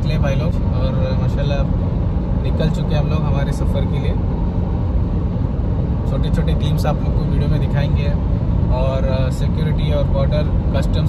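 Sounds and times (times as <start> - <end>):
car cabin road and engine rumble: 0.0 - 11.0.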